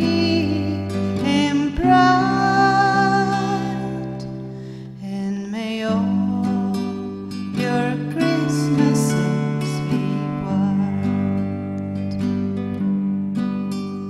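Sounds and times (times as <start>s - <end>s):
woman singing: 0.0s - 12.4s
acoustic guitar: 0.0s - 14.0s.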